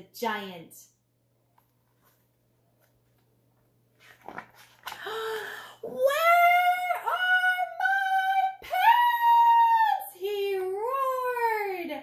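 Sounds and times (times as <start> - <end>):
woman yelling: 5.9 - 12.0.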